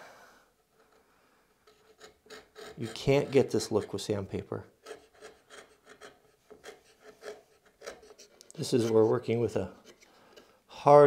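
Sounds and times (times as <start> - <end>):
chisel scraping wood: 1.6 - 10.5
man talking: 2.8 - 4.7, 8.5 - 9.8, 10.7 - 11.0.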